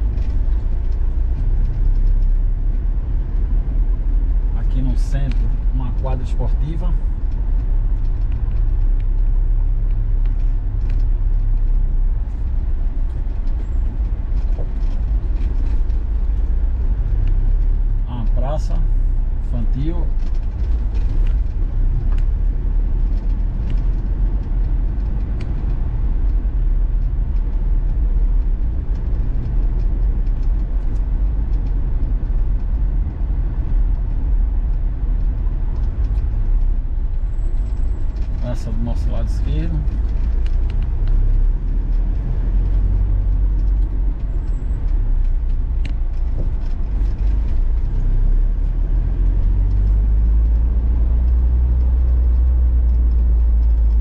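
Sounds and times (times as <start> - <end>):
vehicle engine low rumble: 0.0 - 54.0.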